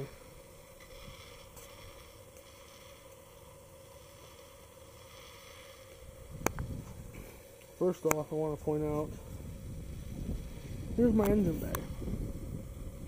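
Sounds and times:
faint hum: 0.0s - 13.0s
microphone handling rumble: 6.3s - 7.3s, 8.1s - 13.0s.

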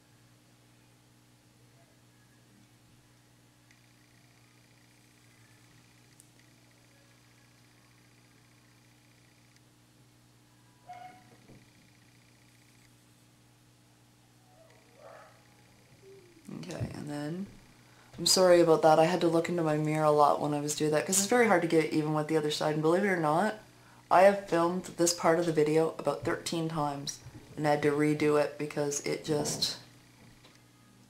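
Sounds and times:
steady low hum: 0.0s - 31.0s.

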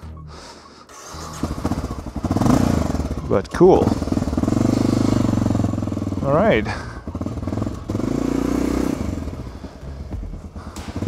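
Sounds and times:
motorcycle engine rumbling: 0.0s - 11.0s.

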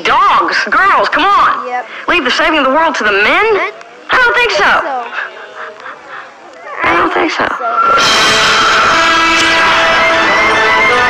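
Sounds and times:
sustained orchestral brass chord: 8.0s - 11.0s.

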